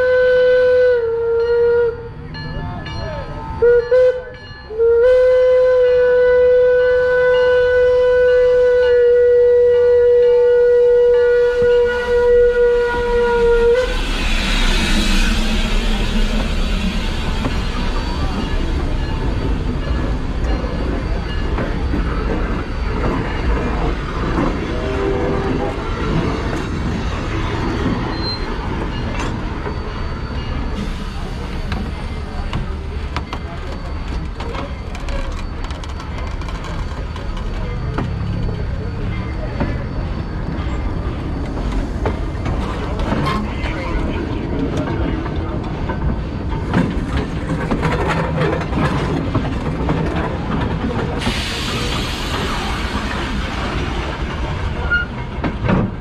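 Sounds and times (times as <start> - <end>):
steam locomotive whistle: 0.0 - 2.1, 3.6 - 18.8, 24.7 - 26.5
train wheels rumbling on rails: 0.0 - 56.0.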